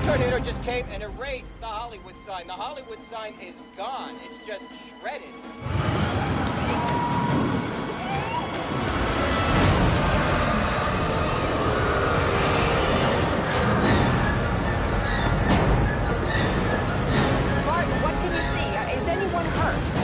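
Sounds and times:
dramatic music: 0:00.0 - 0:20.0
tornado wind rumble: 0:05.6 - 0:20.0.

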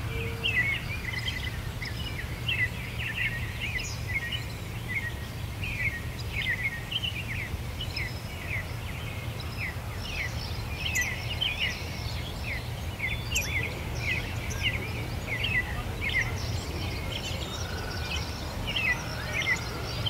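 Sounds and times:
songbirds chirping: 0:00.0 - 0:20.0.

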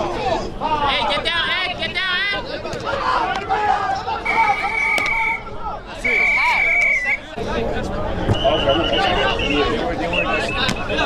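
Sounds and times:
sideline chatter: 0:00.0 - 0:11.0
referee's whistle blasts: 0:04.2 - 0:07.3, 0:08.3 - 0:11.0.

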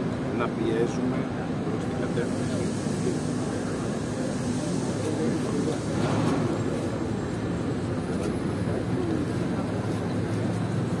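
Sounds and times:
city street rumble: 0:00.0 - 0:11.0
people talking: 0:00.3 - 0:11.0.

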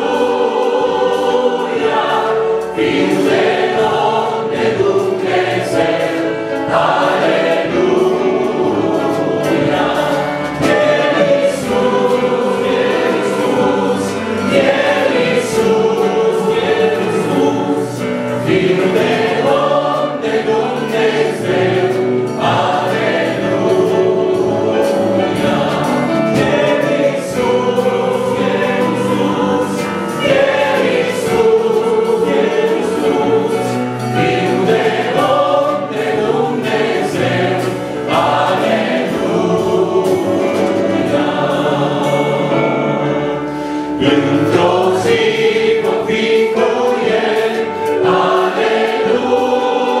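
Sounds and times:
congregation singing a hymn: 0:00.0 - 0:50.0.

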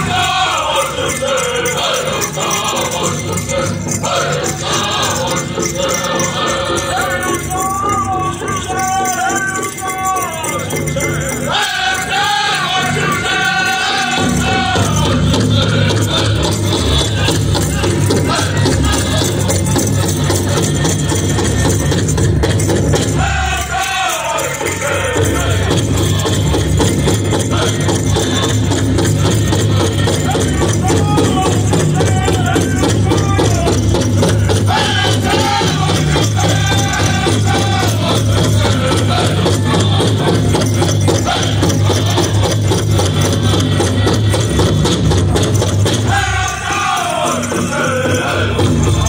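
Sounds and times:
drum group playing big drum: 0:00.0 - 0:09.4, 0:10.0 - 0:49.0
people singing: 0:00.0 - 0:49.0.

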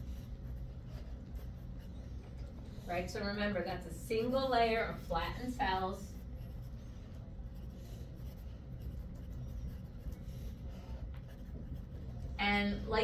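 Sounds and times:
faint writing sounds: 0:00.0 - 0:13.0
steady low hum: 0:00.0 - 0:13.0.

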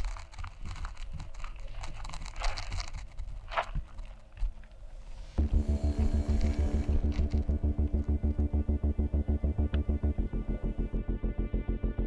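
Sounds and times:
crunching on gravelly ground: 0:00.0 - 0:08.6
low rumble: 0:05.0 - 0:12.0.

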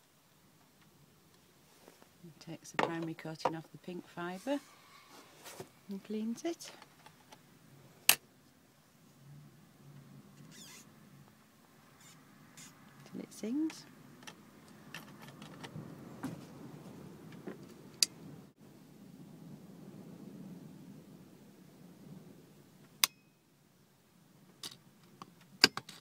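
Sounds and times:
handling noise: 0:01.6 - 0:03.7, 0:04.4 - 0:08.2, 0:12.0 - 0:17.8.

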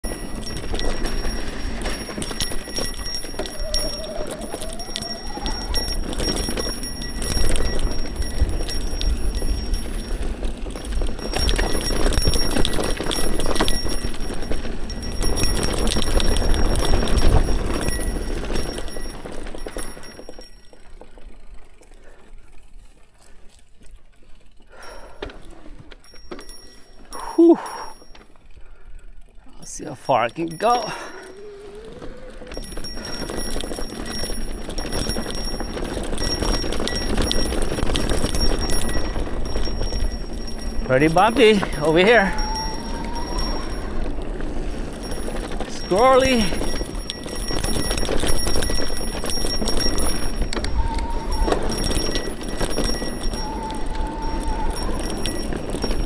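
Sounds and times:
bike tyres rolling on dirt: 0:00.0 - 0:56.0
wind rumbling on microphone: 0:31.9 - 0:56.0.

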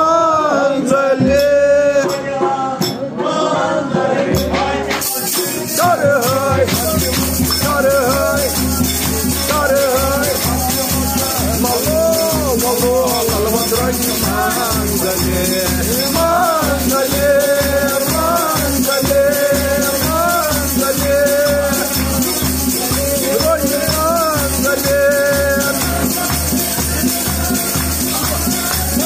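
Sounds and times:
person singing: 0:00.0 - 0:29.0
shaker rattle: 0:04.9 - 0:29.0.

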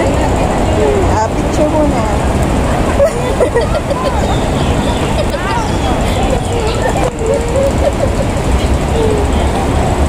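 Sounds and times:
faint voices: 0:00.0 - 0:10.0
low traffic rumble: 0:00.0 - 0:10.0.

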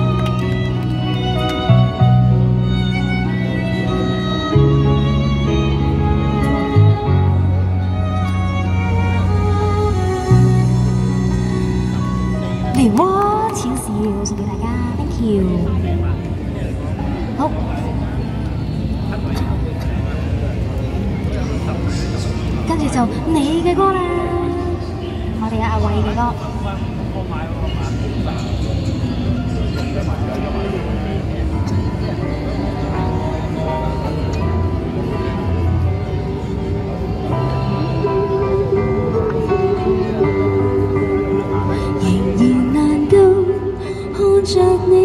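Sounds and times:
woman's voice through microphone: 0:12.8 - 0:15.9, 0:22.6 - 0:26.4.

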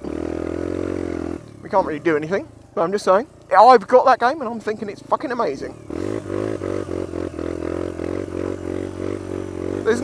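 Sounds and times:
motorcycle engine under throttle: 0:00.0 - 0:10.0.

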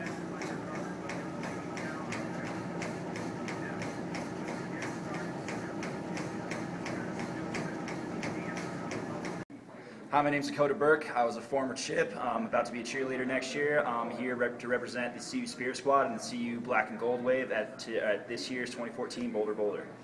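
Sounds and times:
footfalls on treadmill belt: 0:00.0 - 0:09.4
treadmill hum: 0:00.0 - 0:09.5.

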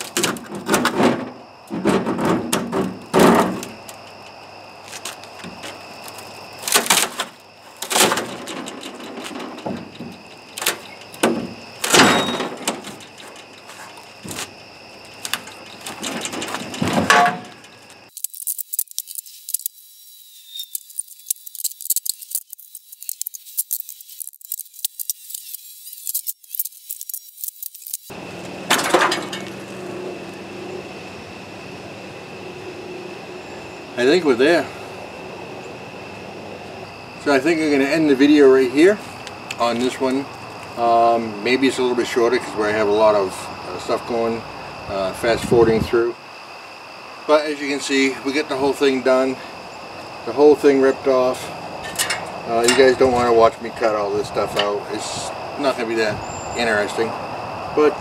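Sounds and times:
wood prying cracks and knocks: 0:00.0 - 0:01.0, 0:05.4 - 0:13.4.

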